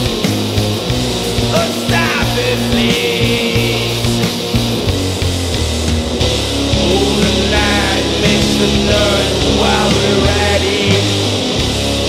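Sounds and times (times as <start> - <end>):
distorted electric guitar: 0.0 - 12.0
electric bass guitar: 0.0 - 12.0.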